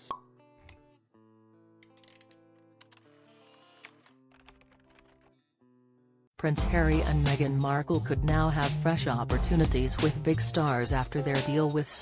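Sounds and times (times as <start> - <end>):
soft instrumental music: 6.5 - 11.9.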